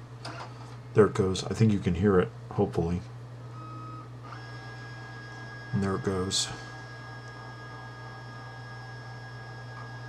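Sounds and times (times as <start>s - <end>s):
scanner motor whine: 3.5s - 10.0s.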